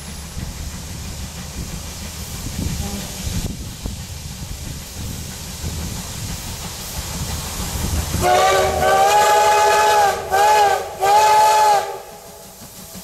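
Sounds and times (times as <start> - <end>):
steam locomotive rumbling: 0.0 - 13.0
steam whistle blast: 8.2 - 12.6.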